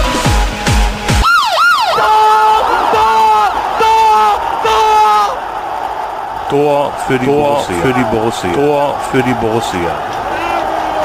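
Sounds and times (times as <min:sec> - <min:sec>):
siren-like swoops: 0:01.2 - 0:02.1.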